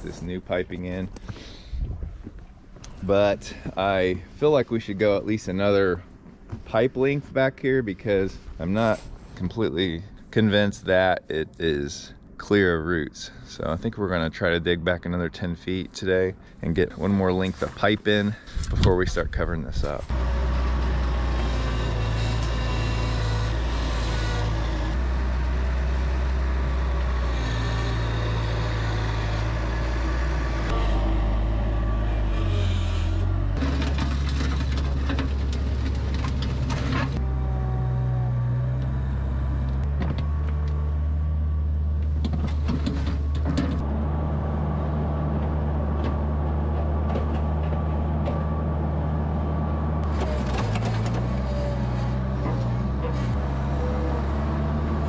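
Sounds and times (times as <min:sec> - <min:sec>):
loader engine running: 0:19.8 - 0:55.0.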